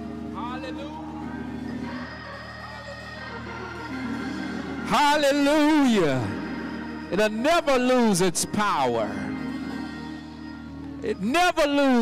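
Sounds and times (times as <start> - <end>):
organ chords: 0.0 - 12.0.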